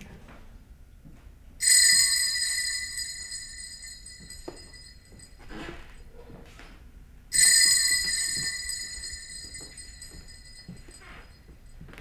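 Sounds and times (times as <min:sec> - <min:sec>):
metallic bell-like chime: 0:01.6 - 0:05.5, 0:07.3 - 0:11.8.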